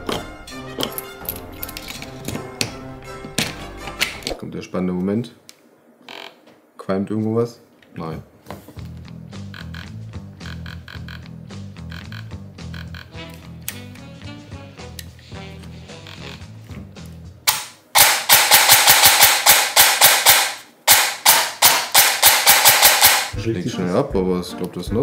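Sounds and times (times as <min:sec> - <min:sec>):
airsoft gearbox cycling fast clicks: 0:17.5 - 0:23.4.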